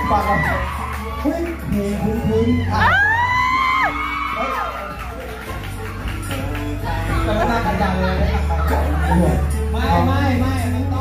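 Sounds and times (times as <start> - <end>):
crowd whooping and cheering: 0.0 - 10.0
background music: 0.0 - 11.0
crowd murmur: 4.5 - 11.0.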